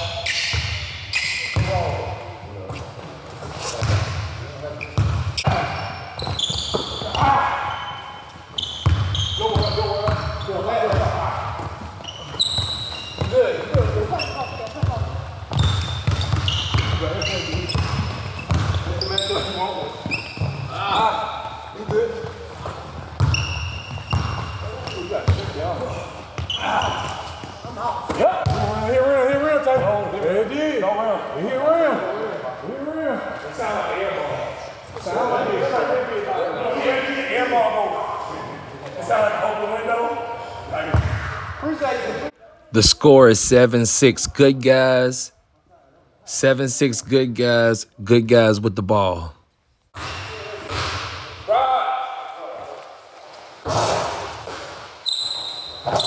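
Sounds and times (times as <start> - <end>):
basketball bouncing on hard court: 3.8 - 4.2, 5.0 - 7.4, 8.5 - 20.7, 21.9 - 29.9, 40.9 - 41.2, 50.0 - 51.2
players calling out: 4.6 - 30.6.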